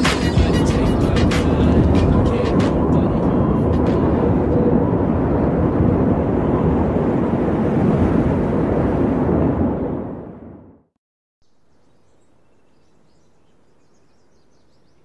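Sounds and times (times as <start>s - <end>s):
hip hop music: 0.0s - 4.6s
loud low rumble: 0.4s - 10.9s.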